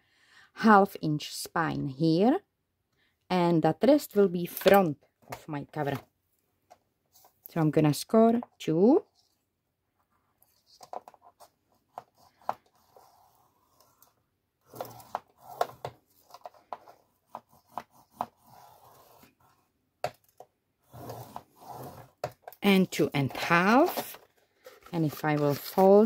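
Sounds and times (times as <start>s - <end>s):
folder tool scratching along groove: 12.1s - 19.6s, 20.8s - 22.5s.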